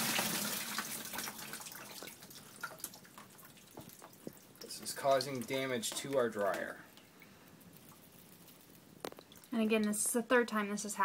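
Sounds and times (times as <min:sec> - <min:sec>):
water splashing into plastic bin: 0:00.0 - 0:06.9
water dripping: 0:00.0 - 0:10.3.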